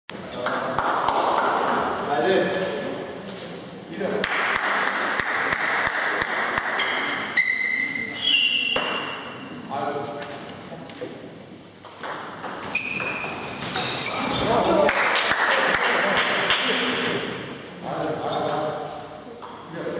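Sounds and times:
shoes squeaking on floor: 0.1 - 0.5, 6.8 - 9.6, 12.5 - 14.6.

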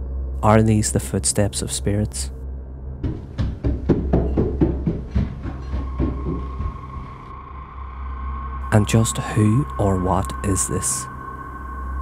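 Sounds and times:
footsteps on wooden staircase: 3.0 - 7.3.

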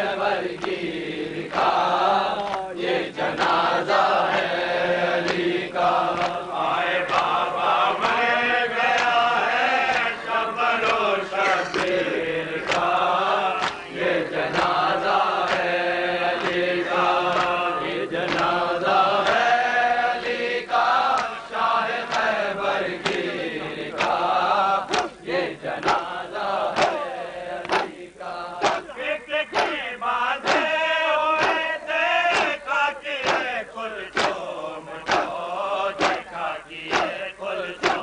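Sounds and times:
men chanting in unison: 0.0 - 38.0
hands slapping bare chests: 0.5 - 0.8, 1.5 - 3.6, 5.2 - 5.5, 6.1 - 6.4, 7.0 - 7.4, 8.0 - 8.3, 8.9 - 9.2, 9.8 - 10.2, 10.8 - 14.8, 15.4 - 15.7, 16.4 - 16.6, 17.3 - 18.6, 21.1 - 21.4, 22.1 - 22.4, 23.0 - 23.3, 23.9 - 26.1, 26.7 - 28.0, 28.6 - 30.8, 31.4 - 35.4, 36.0 - 38.0.

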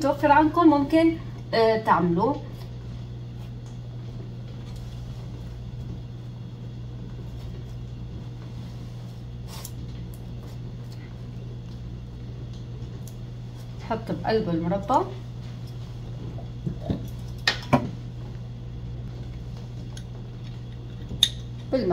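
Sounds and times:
low hum: 0.0 - 21.9.

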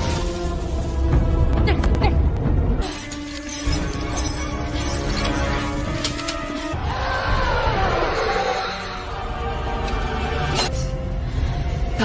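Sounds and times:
film score music: 0.0 - 12.0
glass shattering: 2.8 - 6.7.

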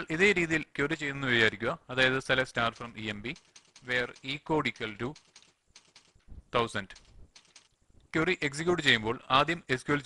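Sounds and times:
man speaking: 0.0 - 5.2, 6.4 - 7.0, 8.1 - 10.0
computer keyboard typing: 2.6 - 6.3, 6.9 - 7.8.

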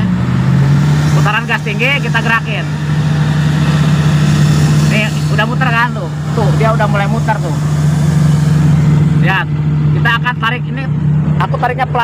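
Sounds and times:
excavator engine humming: 0.0 - 12.0.

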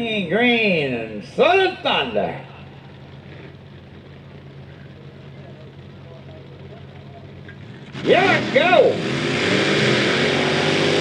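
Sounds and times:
truck engines idling: 0.0 - 11.0.

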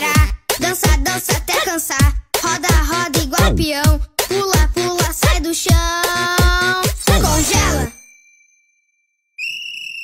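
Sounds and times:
bright high chime: 7.4 - 10.0.

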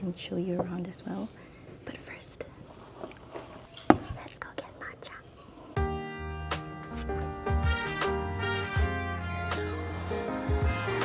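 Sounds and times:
soft rustling: 2.5 - 4.4.

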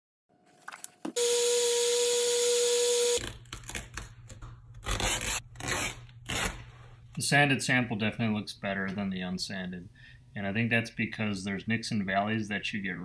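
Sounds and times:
electric polisher whining: 1.2 - 3.2.

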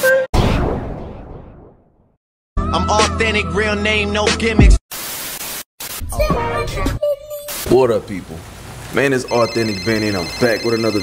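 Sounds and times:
music: 2.6 - 4.8
television static hiss: 5.0 - 6.6, 7.3 - 11.0.

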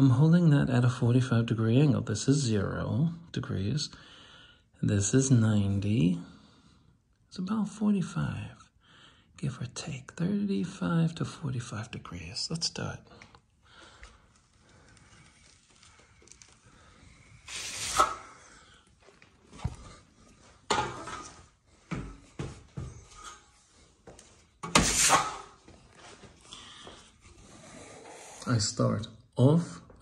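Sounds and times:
trowel scraping across wall: 17.5 - 18.4, 24.6 - 25.6.

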